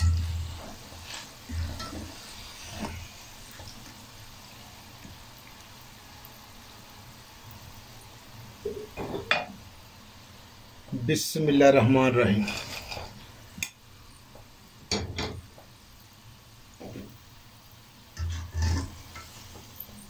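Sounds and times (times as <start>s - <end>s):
chips sizzling in oil: 0.0s - 20.0s.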